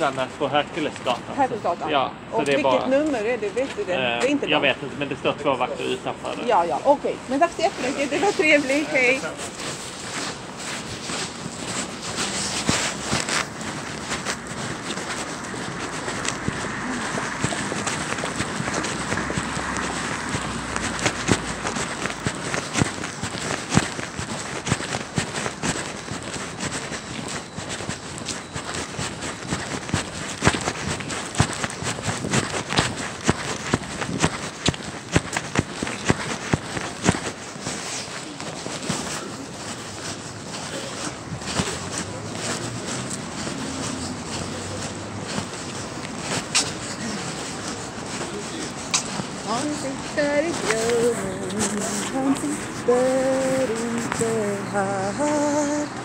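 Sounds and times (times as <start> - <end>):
footsteps on pavement: 0.0 - 56.0
street noise: 0.0 - 56.0
snatches of voices: 7.2 - 56.0.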